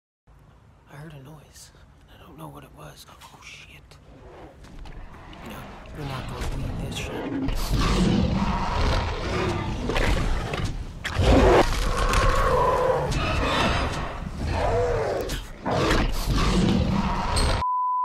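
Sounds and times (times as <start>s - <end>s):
dinosaur roars: 4.1s - 17.6s
steady test-tone beep: 17.6s - 18.0s.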